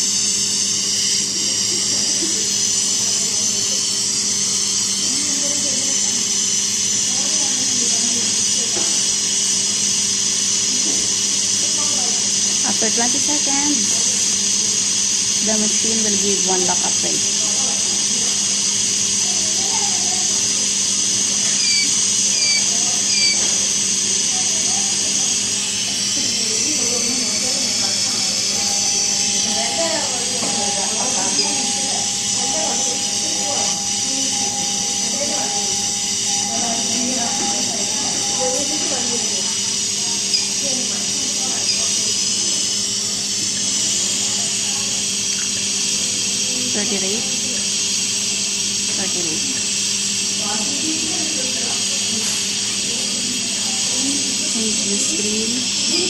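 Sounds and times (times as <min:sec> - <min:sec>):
gas flow hiss: 0:00.0 - 0:56.0
steady alarm tone: 0:00.0 - 0:56.0.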